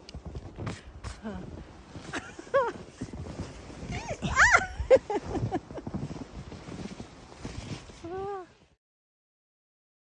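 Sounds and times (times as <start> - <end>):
snow crunching: 0.0 - 8.7
snowsuit fabric rustling: 0.1 - 8.8
woman laughing squeals: 4.2 - 5.6.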